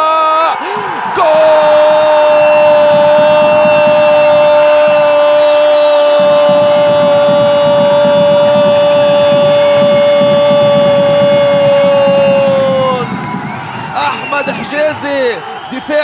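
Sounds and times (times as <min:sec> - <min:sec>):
commentator shouting goal: 0:00.0 - 0:13.1
crowd noise: 0:00.0 - 0:16.0.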